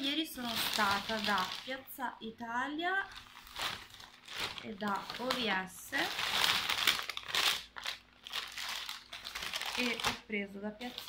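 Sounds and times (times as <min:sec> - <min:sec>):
bag crinkling: 0:00.0 - 0:02.0, 0:03.0 - 0:11.0.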